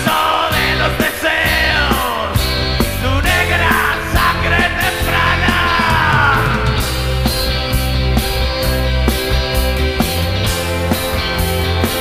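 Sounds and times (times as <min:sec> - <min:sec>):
rock band playing: 0:00.0 - 0:12.0.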